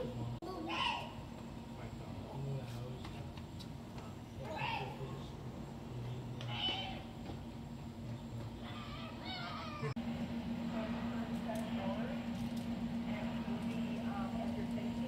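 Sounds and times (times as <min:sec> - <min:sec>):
steady low hum: 0:00.0 - 0:15.0
people talking: 0:01.8 - 0:05.4, 0:10.7 - 0:12.4, 0:13.0 - 0:15.0.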